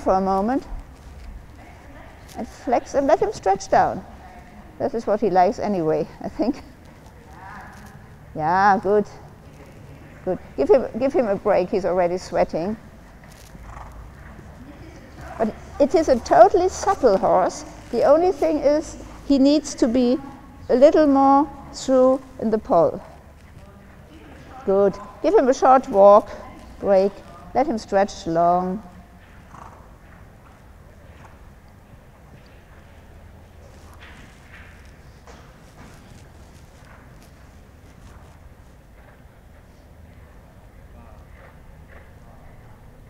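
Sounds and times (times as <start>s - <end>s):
horse hoofbeats on sand: 13.2s - 19.3s, 28.1s - 31.6s.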